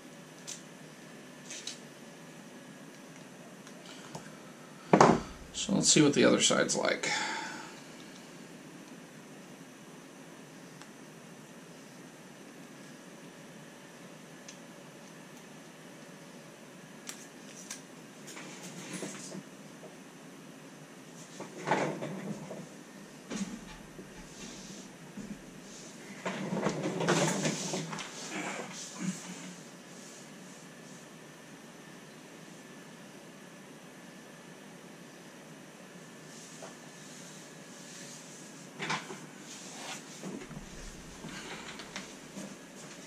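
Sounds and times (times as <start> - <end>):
low room hiss: 0.0 - 43.0.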